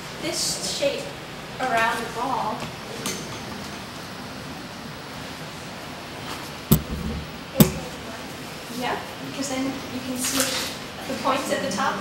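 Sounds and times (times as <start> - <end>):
room noise: 6.7 - 8.2.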